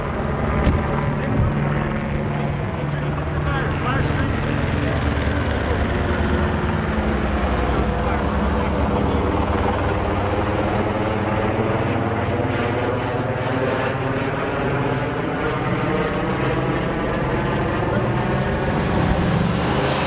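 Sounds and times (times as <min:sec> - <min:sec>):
helicopter droning overhead: 0:00.0 - 0:20.0.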